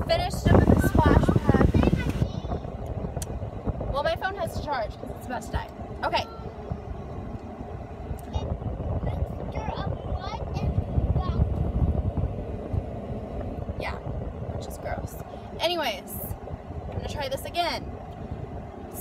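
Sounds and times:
voices: 0:00.0 - 0:11.9, 0:13.7 - 0:19.0
car engine rumble inside cabin: 0:00.0 - 0:19.0.

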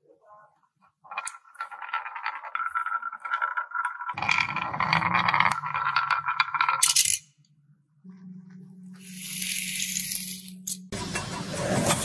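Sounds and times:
marbles rattling down wooden track: 0:01.0 - 0:07.2
marbles clattering into toy truck: 0:01.1 - 0:07.3.

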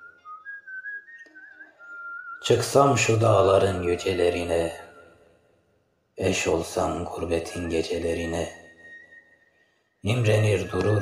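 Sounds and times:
person whistling a melody: 0:00.0 - 0:02.6, 0:07.6 - 0:11.0.

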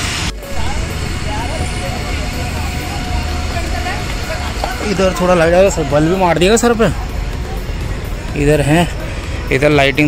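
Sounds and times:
low outdoor rumble: 0:00.0 - 0:10.0
faint voices talking: 0:00.3 - 0:10.0.

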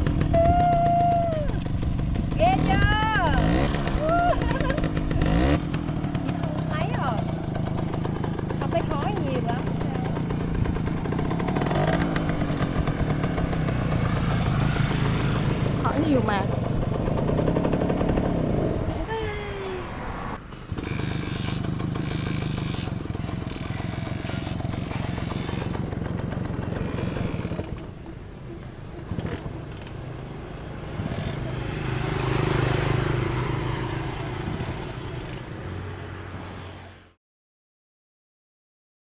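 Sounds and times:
moped engine idling: 0:00.0 - 0:35.7.

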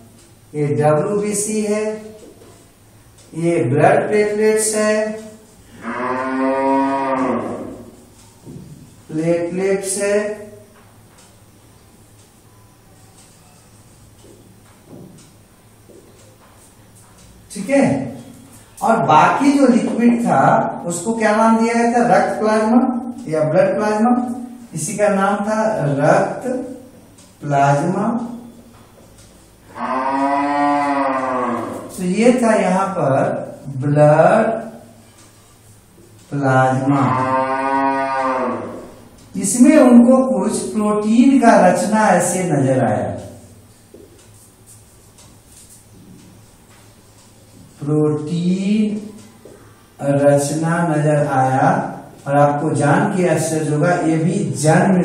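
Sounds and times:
cow mooing: 0:05.7 - 0:08.0, 0:29.6 - 0:31.9, 0:36.8 - 0:39.0.

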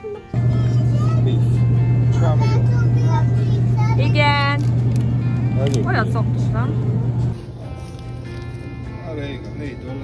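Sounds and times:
music: 0:00.0 - 0:10.0
voices talking: 0:00.4 - 0:07.3
loud steady low hum: 0:00.4 - 0:07.4.

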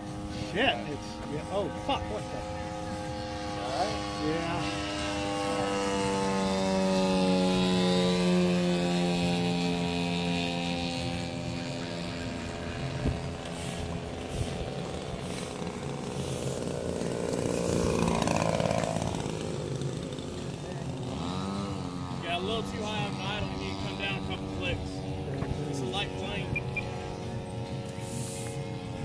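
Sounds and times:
model airplane engine droning: 0:00.0 - 0:29.0.

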